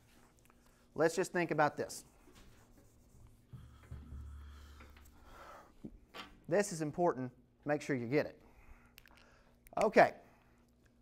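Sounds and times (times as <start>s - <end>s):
low hum: 3.0s - 5.4s.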